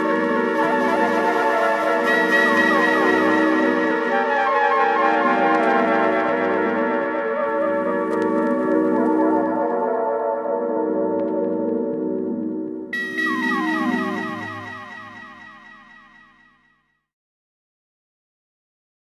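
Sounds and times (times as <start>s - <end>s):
background music with low drone: 0.0s - 16.4s.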